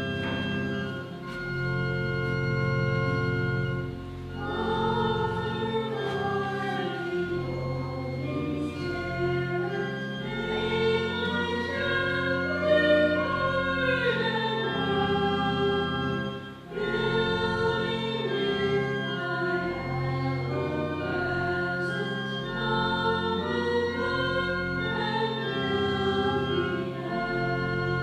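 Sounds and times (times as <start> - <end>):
sustained organ notes: 0.0 - 28.0
voices singing a hymn: 4.2 - 28.0.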